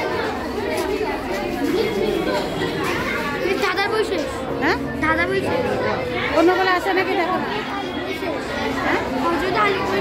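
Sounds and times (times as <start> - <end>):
crowd of children and adults talking: 0.0 - 10.0.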